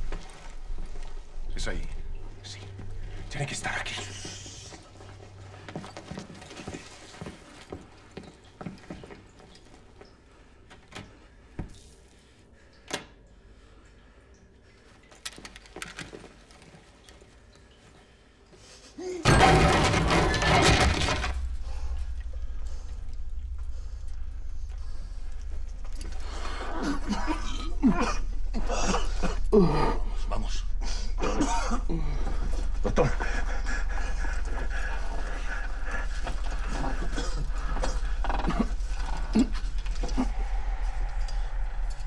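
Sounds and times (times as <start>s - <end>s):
loud breaking crash: 19.2s - 23.0s
steady low drone: 19.3s - 42.0s.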